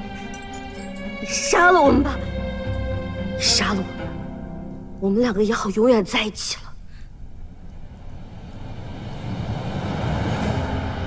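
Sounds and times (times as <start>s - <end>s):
tense music: 0.0s - 5.6s, 7.3s - 11.0s
low rumbling whoosh: 7.5s - 11.0s.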